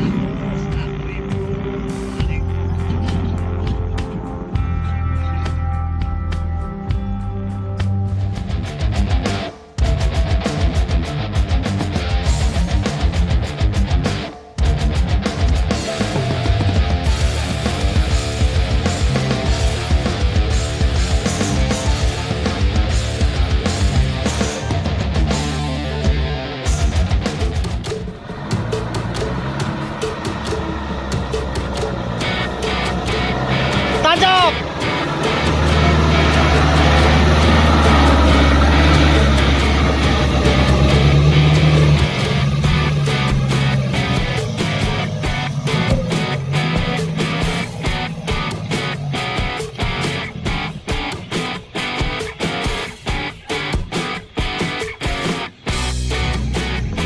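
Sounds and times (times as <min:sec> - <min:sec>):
diesel truck engine running: 0:00.0 - 0:05.6, 0:15.7 - 0:52.2, 0:55.6 - 0:57.0
rock music with guitar: 0:00.0 - 0:57.0.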